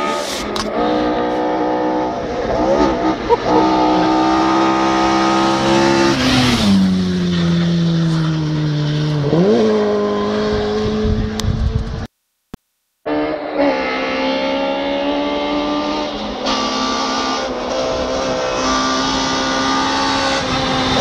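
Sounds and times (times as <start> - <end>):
rally car engine: 0.0 - 12.1, 13.1 - 21.0.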